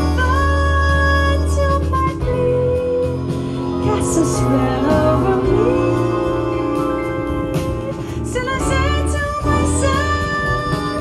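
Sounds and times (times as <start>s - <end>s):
orchestra playing held chords: 2.1s - 9.8s.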